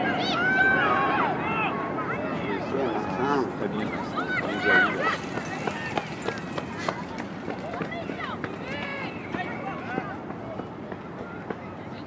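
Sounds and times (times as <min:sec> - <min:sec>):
shouts and calls from players: 0:00.0 - 0:12.0.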